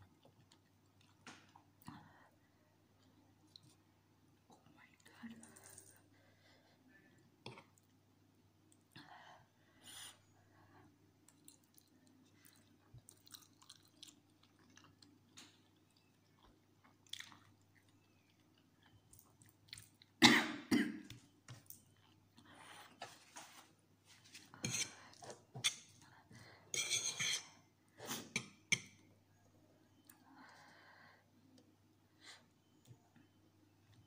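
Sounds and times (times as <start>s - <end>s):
person chewing noodles: 11.2s - 20.2s
person coughing: 20.2s - 21.1s.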